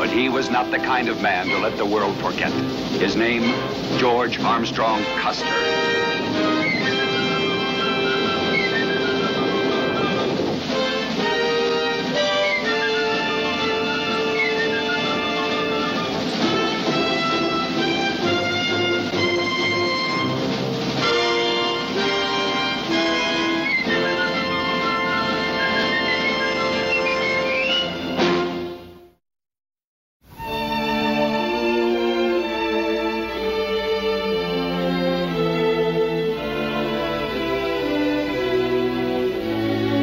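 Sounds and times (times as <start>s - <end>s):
orchestral music led by brass: 0.0s - 29.2s, 30.3s - 40.0s.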